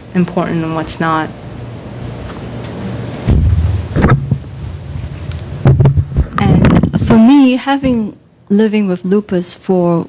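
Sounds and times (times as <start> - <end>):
microphone handling rumble: 3.0 - 8.1
microphone knocks: 3.2 - 7.2.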